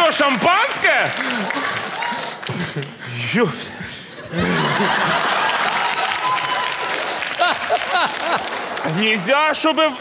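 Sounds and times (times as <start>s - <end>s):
audience applauding: 0.0s - 3.0s, 4.4s - 10.0s
man talking: 2.5s - 4.0s, 8.8s - 10.0s.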